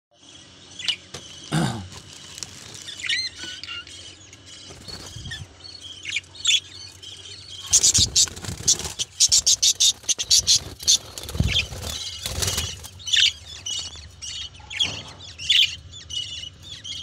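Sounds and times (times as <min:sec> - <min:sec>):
parrots chirping and whistling: 0:02.8 - 0:17.0
bird wings flapping: 0:07.8 - 0:12.8.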